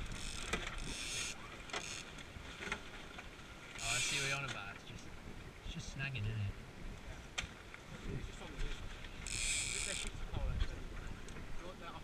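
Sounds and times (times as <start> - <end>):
water washing along hull: 0.0 - 12.0
wind buffeting microphone: 9.9 - 12.0.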